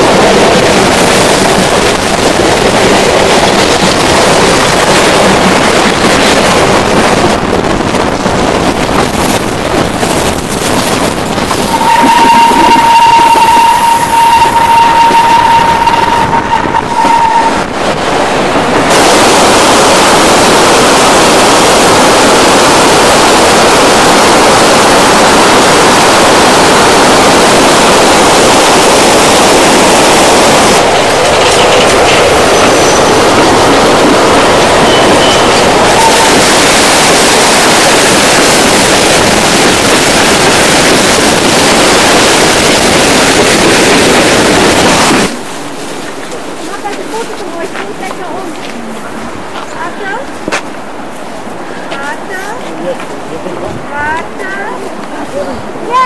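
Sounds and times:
train running: 0.0s - 56.0s
high-pitched squeal: 11.3s - 17.7s.

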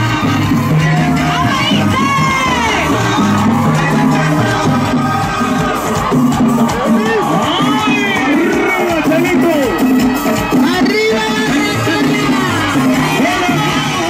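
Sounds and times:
crowd cheering and shouting: 0.0s - 14.0s
latin dance music: 0.0s - 14.0s.

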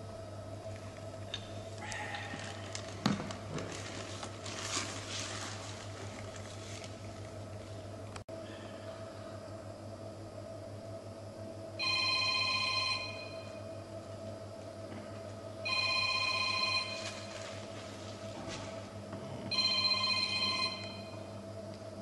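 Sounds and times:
low background hum: 0.0s - 22.0s
mobile phone ringing: 11.8s - 13.6s, 15.6s - 17.4s, 19.5s - 21.2s.

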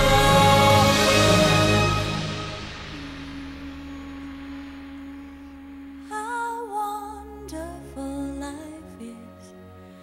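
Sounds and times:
sustained soundtrack note: 0.0s - 6.1s.

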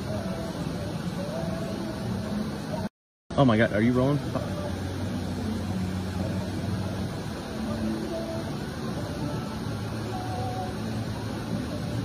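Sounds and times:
background rush: 0.0s - 12.0s
low machine hum: 3.6s - 12.0s.

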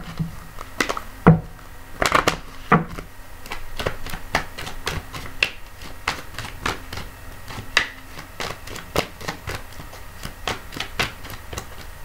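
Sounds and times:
cards being shuffled: 2.0s - 12.0s.

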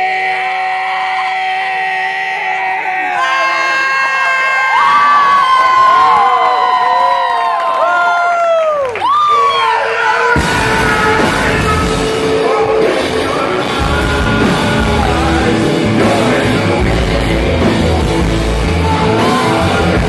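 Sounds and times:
electric guitar feedback: 9.4s - 20.0s
rock band playing: 9.8s - 20.0s.

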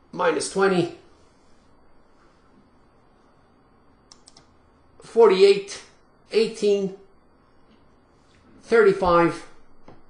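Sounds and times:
low room hiss: 0.0s - 10.0s
computer keyboard clicks: 4.1s - 4.5s.

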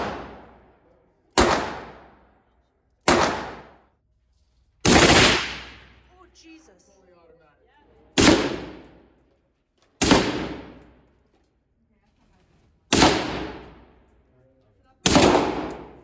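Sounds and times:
echoing gunshots indoors: 0.0s - 4.0s, 4.8s - 6.1s, 8.1s - 9.2s, 9.9s - 11.3s, 12.8s - 14.2s, 15.0s - 16.0s.

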